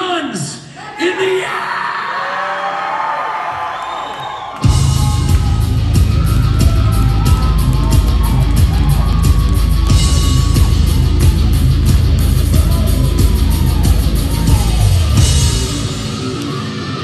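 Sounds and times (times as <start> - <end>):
crowd yelling and whooping: 0.8 - 17.0
heavy rock band playing: 4.6 - 17.0.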